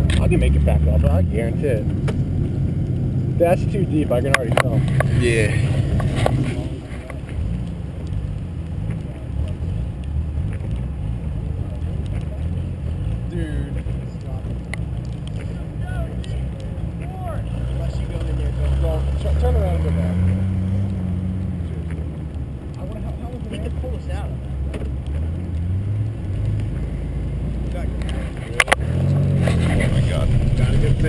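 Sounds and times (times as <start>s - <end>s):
car engine straining in snow: 0.0s - 31.0s.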